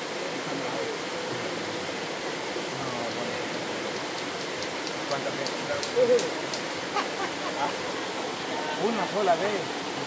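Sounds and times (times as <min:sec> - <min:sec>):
river flowing over rocks: 0:00.0 - 0:10.0.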